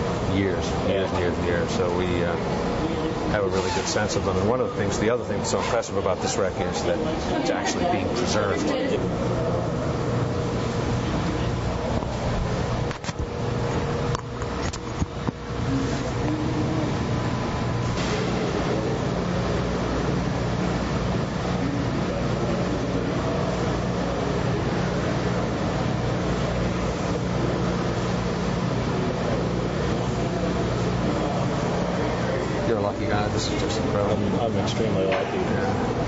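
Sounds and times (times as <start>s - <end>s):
mechanical drone with low hum: 0.0s - 36.0s.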